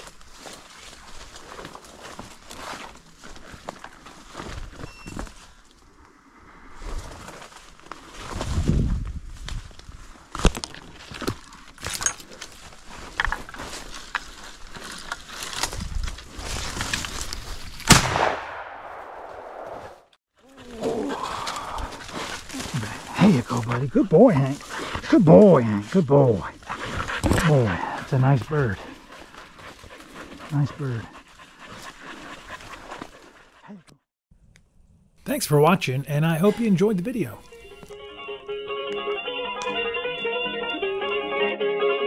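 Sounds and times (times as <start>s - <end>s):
footsteps through dry leaves: 0.0s - 5.6s, 7.0s - 17.8s, 21.3s - 23.2s
shotgun shot with echo: 17.9s - 19.9s.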